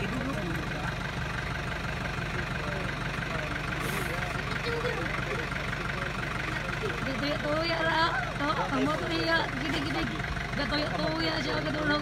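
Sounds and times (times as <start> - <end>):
vehicle engine idling: 0.0 - 12.0.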